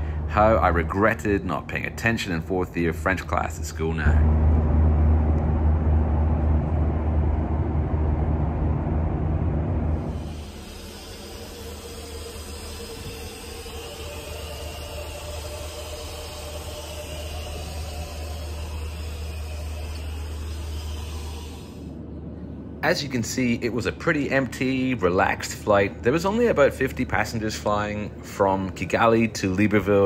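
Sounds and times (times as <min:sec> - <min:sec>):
airplane cabin engine drone: 0:00.0 - 0:30.0
faint steady tones: 0:00.0 - 0:30.0.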